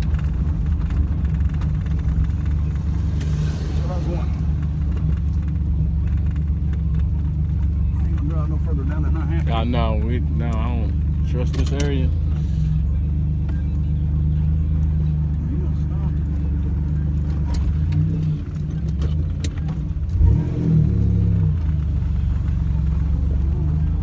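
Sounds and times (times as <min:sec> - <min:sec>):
car engine from inside cabin: 0:00.0 - 0:24.0.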